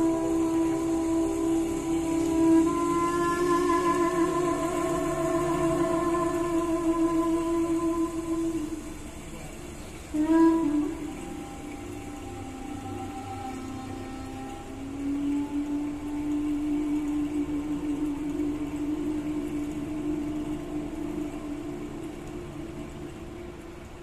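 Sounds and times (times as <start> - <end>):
held low musical note: 0.0 - 24.0.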